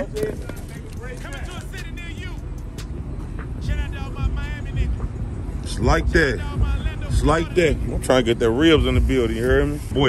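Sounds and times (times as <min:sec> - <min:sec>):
steady low rumble: 0:00.0 - 0:10.0
voices talking: 0:00.0 - 0:10.0
man speaking: 0:07.1 - 0:10.0.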